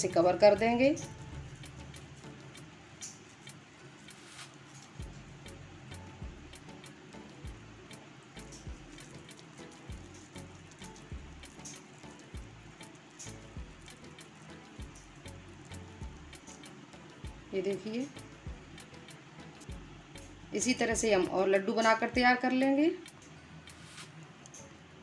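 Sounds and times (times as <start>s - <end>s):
small scattered clicks: 1.6s - 5.6s, 8.3s - 17.3s, 23.0s - 24.9s.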